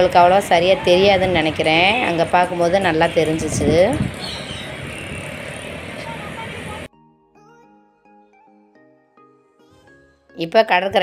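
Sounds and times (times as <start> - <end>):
outdoor background noise: 0.0 - 6.9
faint voices: 5.9 - 6.9
soft music: 6.7 - 11.0.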